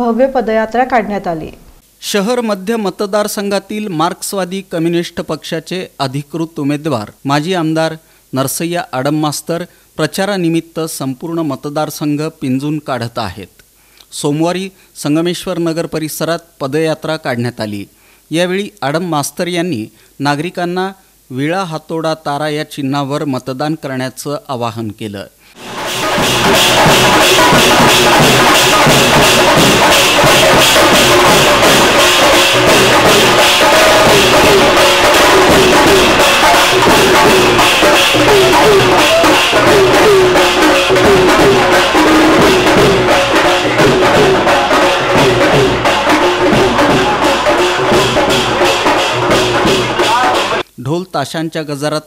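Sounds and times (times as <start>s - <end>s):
man narrating: 2.0s - 25.4s, 50.0s - 52.0s
marching drum band: 25.6s - 50.6s.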